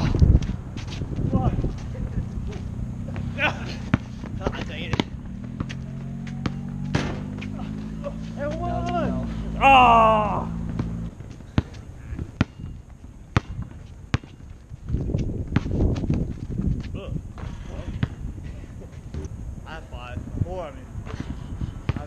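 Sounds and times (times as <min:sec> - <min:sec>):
low noise: 0:00.0 - 0:15.0
basketball bouncing on asphalt: 0:02.5 - 0:07.6, 0:10.6 - 0:18.3, 0:21.1 - 0:22.0
person calling out: 0:07.6 - 0:10.6.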